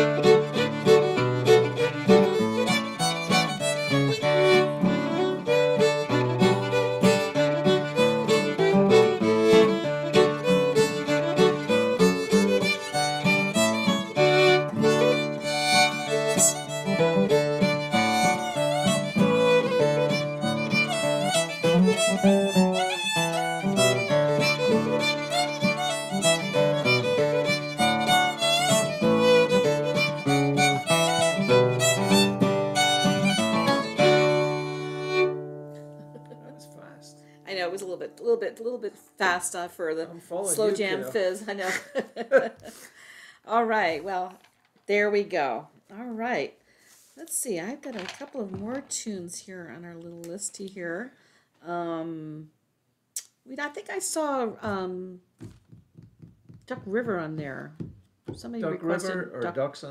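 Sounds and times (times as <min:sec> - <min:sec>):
acoustic guitar chords: 0:00.0 - 0:37.4
fiddle melody: 0:00.0 - 0:41.9, 0:56.7 - 0:59.9.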